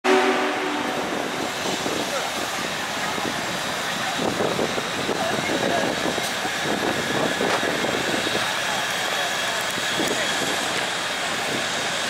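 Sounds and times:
steam whistle chord: 0.0 - 1.7
train noise: 0.0 - 12.0
crowd chatter: 0.1 - 12.0.

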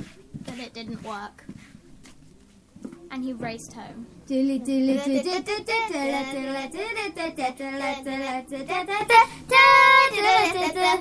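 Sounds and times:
child singing wordless tune: 4.3 - 11.0.

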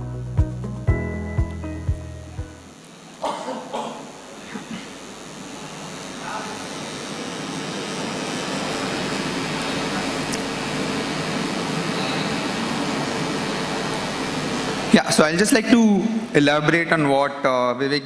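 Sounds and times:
rushing hall background noise: 0.0 - 18.0.

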